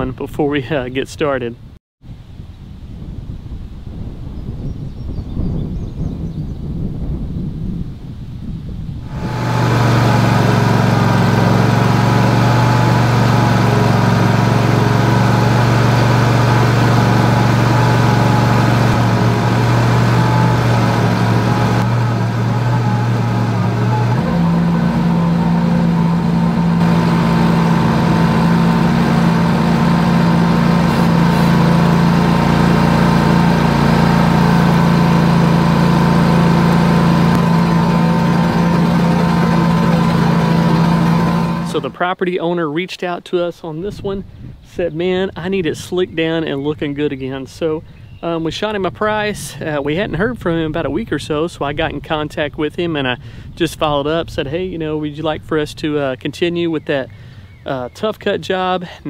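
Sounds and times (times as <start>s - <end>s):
tractor diesel engine running: 9.1s - 42.2s.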